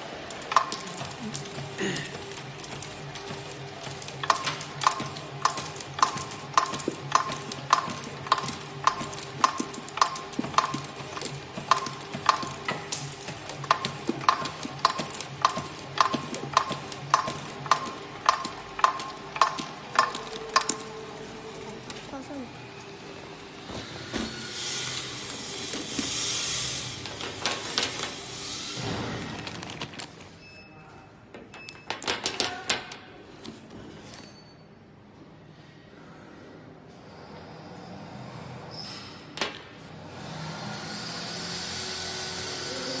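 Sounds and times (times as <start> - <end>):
plastic sticks clicking together: 13.6 - 20.8
plastic bag crinkling: 29.2 - 30.4.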